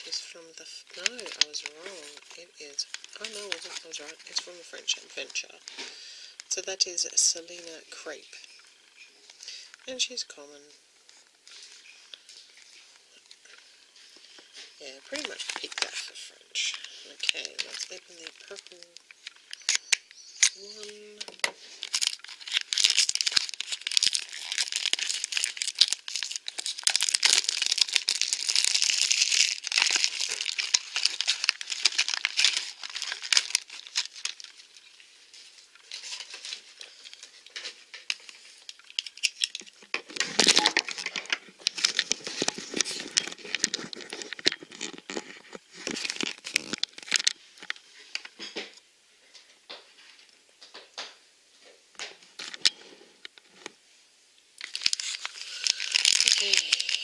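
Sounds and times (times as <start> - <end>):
plastic packaging ripping: 0.0 - 5.9, 14.3 - 48.5, 54.6 - 57.0
plastic packaging crinkling: 0.0 - 10.1, 11.0 - 48.8, 52.0 - 53.8, 54.6 - 57.0.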